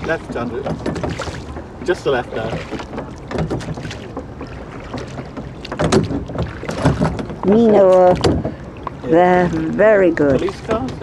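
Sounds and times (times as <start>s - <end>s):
oars in water: 0.0s - 11.0s
oars knocking in rowlocks: 0.0s - 11.0s.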